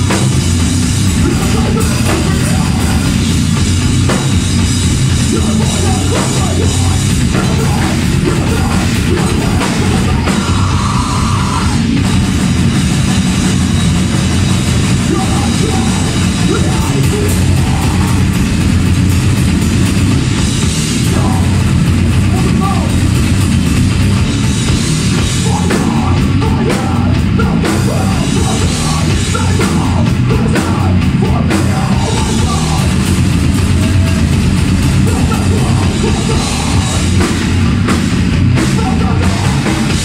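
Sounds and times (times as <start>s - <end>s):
distorted guitars and bass: 0.0s - 40.0s
fast drumming with cymbals: 0.0s - 40.0s.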